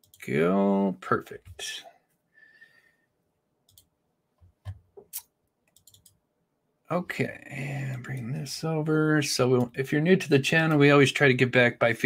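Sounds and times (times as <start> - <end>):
computer mouse clicks: 3.7 - 3.9, 4.5 - 6.2.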